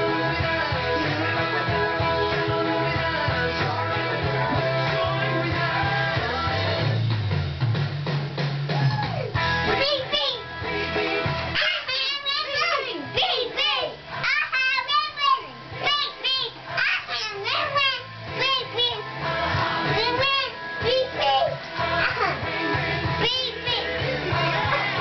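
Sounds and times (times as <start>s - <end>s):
rock music: 0.0s - 25.0s
voice: 8.9s - 10.4s, 11.6s - 19.0s, 19.9s - 22.4s, 23.2s - 24.0s
young boy singing: 9.7s - 25.0s.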